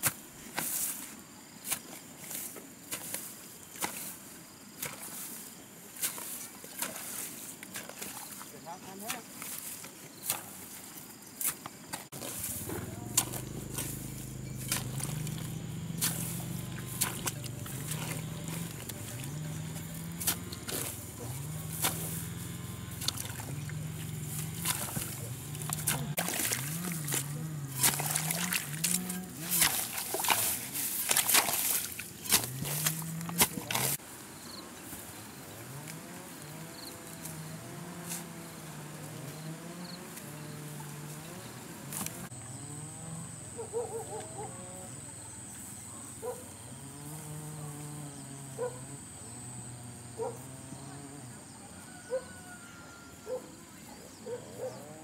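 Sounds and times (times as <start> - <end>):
muddy water sloshing: 6.0 - 34.0
hoe chopping into wet soil: 11.4 - 22.2, 24.2 - 34.0
low wavering voice-like sound: 25.0 - 29.5.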